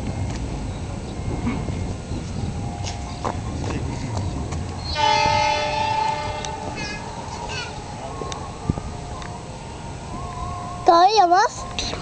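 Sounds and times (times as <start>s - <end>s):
approaching train: 0.0s - 12.0s
locomotive horn blast: 4.8s - 7.1s.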